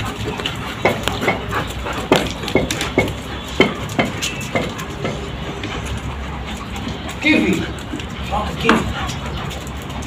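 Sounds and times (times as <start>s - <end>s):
dogs barking: 0.0s - 10.0s.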